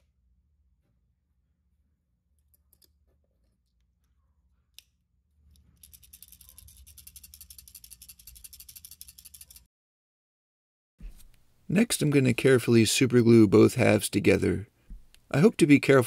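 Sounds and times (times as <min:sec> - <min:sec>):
metal balls rattling in plastic lure: 0:05.6 - 0:09.7.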